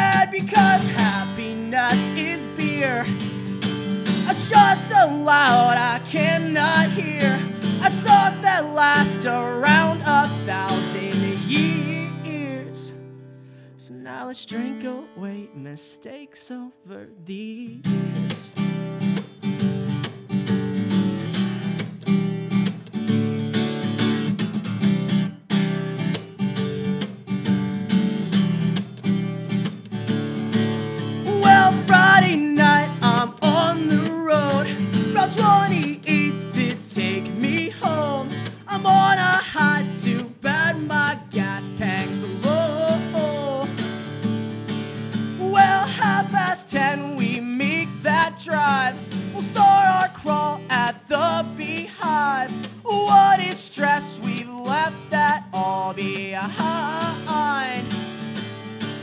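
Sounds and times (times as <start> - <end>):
man singing: 0.0 - 13.0, 13.8 - 18.7, 31.2 - 43.9, 45.2 - 58.0
acoustic guitar strumming: 0.0 - 16.5, 17.3 - 59.0.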